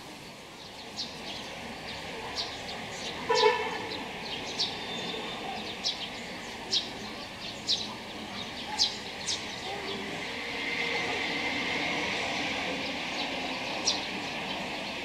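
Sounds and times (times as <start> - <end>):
steady background noise: 0.0 - 15.0
small birds chirping: 0.2 - 10.8, 11.5 - 15.0.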